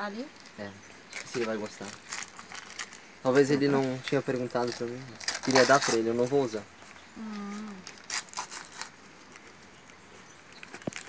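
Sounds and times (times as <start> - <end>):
wrapping paper rustling: 0.4 - 6.6, 7.7 - 11.0.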